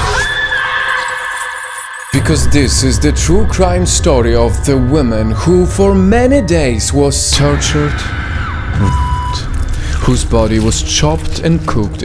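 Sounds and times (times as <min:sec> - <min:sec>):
eerie sustained tone: 0:01.3 - 0:10.6.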